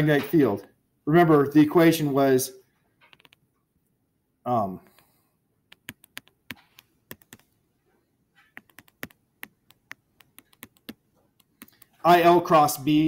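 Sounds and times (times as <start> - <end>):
stylus clicking on tablet screen: 2.9 - 3.7, 4.8 - 12.1.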